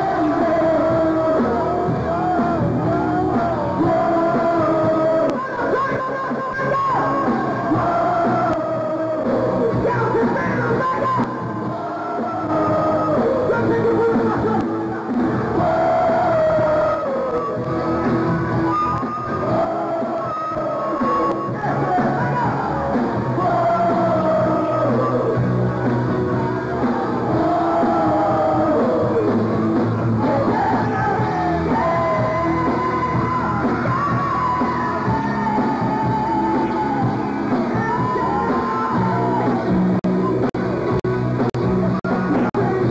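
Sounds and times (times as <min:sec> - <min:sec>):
hard rock band playing: 0:00.0 - 0:42.9.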